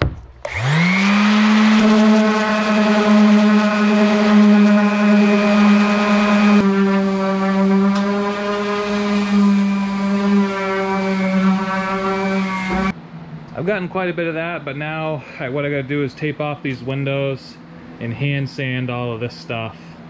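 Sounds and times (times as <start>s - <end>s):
palm sander whining: 0.0s - 13.0s.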